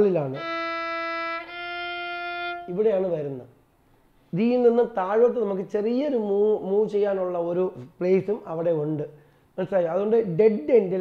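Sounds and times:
man talking: 0:00.0 - 0:00.4, 0:02.7 - 0:03.5, 0:04.3 - 0:11.0
violin long bowed notes: 0:00.2 - 0:03.1.

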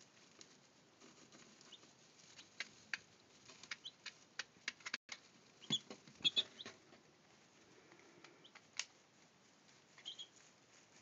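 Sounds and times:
chicks rustling in bedding: 0:00.0 - 0:11.0
chicks peeping: 0:00.9 - 0:07.0, 0:08.0 - 0:09.1, 0:09.8 - 0:11.0.

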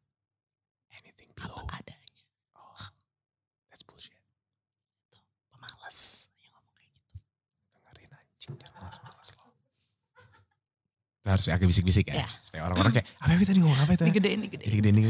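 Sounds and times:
person whispering: 0:01.0 - 0:03.0, 0:03.8 - 0:04.2, 0:05.6 - 0:06.8, 0:07.9 - 0:09.4, 0:12.1 - 0:15.0.

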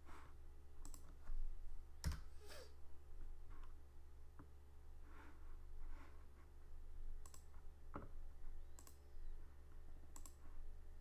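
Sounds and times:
low steady hum: 0:00.0 - 0:11.0
computer clicks: 0:00.8 - 0:01.2, 0:07.2 - 0:07.5, 0:08.7 - 0:09.0, 0:10.1 - 0:10.4.

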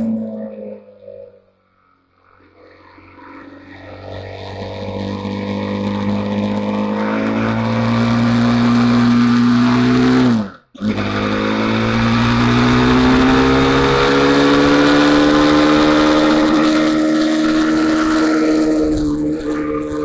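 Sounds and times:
motorcycle engine accelerating: 0:00.0 - 0:20.0
wind and road noise: 0:00.0 - 0:20.0.

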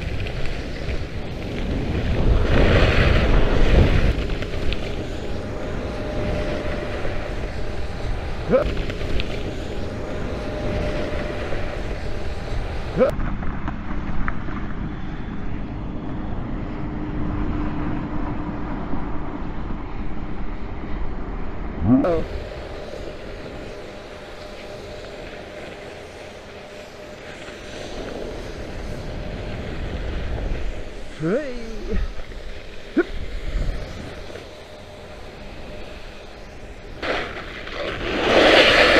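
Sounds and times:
runners scraping over hard snow: 0:00.0 - 0:13.0, 0:37.0 - 0:38.9
wind on microphone: 0:00.0 - 0:38.9.

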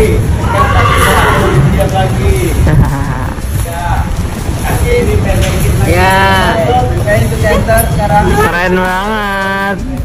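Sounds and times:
low rumble: 0:00.0 - 0:08.8
person laughing: 0:02.6 - 0:03.6.

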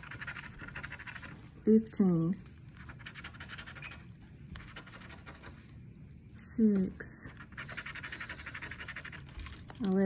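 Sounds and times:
scratching lottery ticket: 0:00.0 - 0:01.6, 0:02.6 - 0:05.7, 0:07.2 - 0:10.0.

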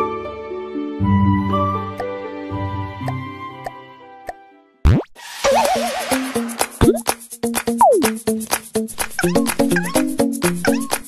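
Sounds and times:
cartoon background music: 0:00.0 - 0:11.0
plop sound effects: 0:06.8 - 0:07.1.

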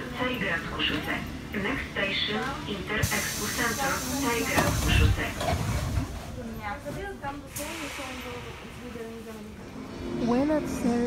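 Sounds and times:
train rumbling: 0:00.0 - 0:11.0
voices: 0:00.0 - 0:11.0
short sharp air hiss: 0:07.5 - 0:09.0
steady air hiss: 0:07.5 - 0:09.4.

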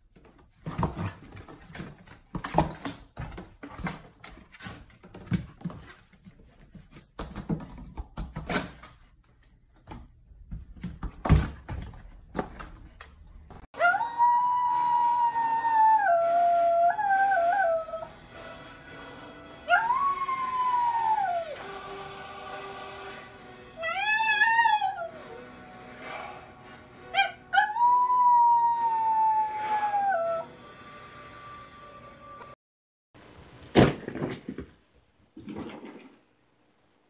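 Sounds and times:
dog howling: 0:13.8 - 0:18.1, 0:19.7 - 0:21.6, 0:23.8 - 0:25.3, 0:27.2 - 0:30.5
dog yip: 0:27.1 - 0:30.5.

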